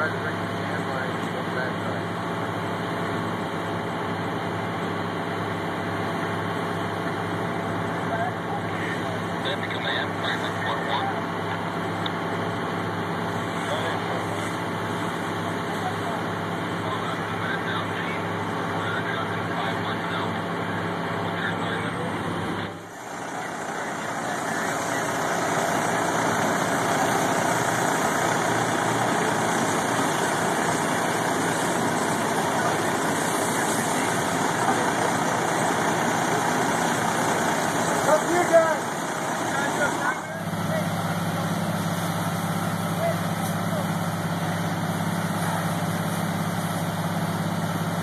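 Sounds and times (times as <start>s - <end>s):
fire engine droning: 0.0s - 48.0s.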